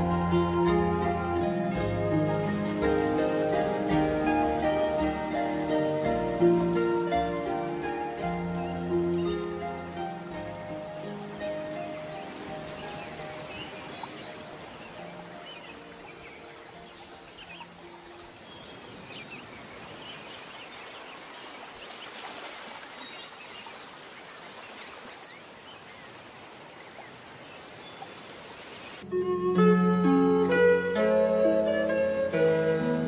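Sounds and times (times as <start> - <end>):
soft instrumental music: 0.0 - 18.3, 29.0 - 33.0
birds chirping: 0.0 - 29.1.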